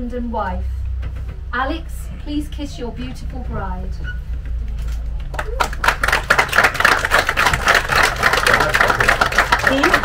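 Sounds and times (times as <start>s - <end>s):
crowd applauding: 5.3s - 10.0s.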